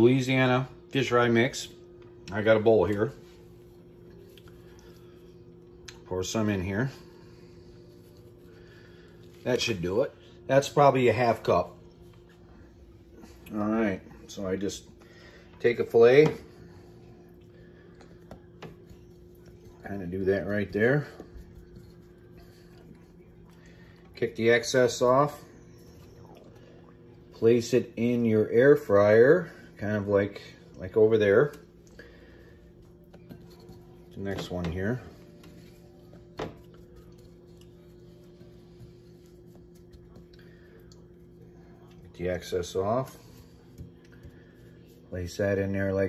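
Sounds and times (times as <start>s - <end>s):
faint steady hum: 0.0s - 46.0s.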